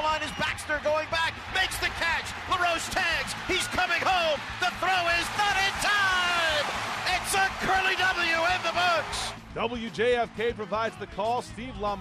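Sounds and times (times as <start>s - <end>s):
announcer shouting excitedly: 0.0s - 9.4s
stadium crowd cheering: 0.0s - 12.0s.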